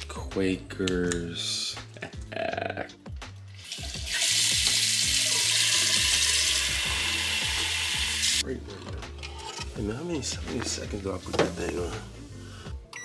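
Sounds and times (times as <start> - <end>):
tap water running into cup: 3.6 - 8.4.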